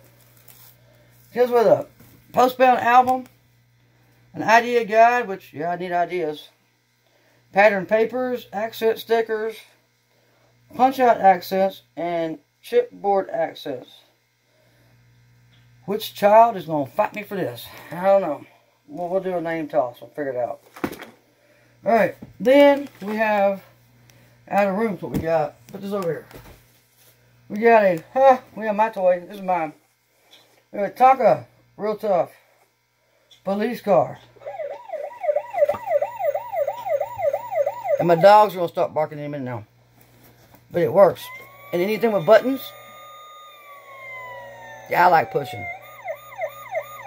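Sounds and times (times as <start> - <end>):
faint electrical hum: 0.0 - 47.0
toy electronic siren wailing: 34.4 - 38.3, 41.1 - 47.0
person speaking: 40.7 - 45.8.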